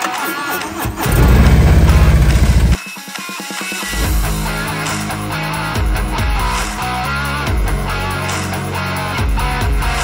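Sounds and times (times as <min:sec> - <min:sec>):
motorcycle engine running: 0:00.7 - 0:02.8
guitar rock music: 0:01.0 - 0:03.3.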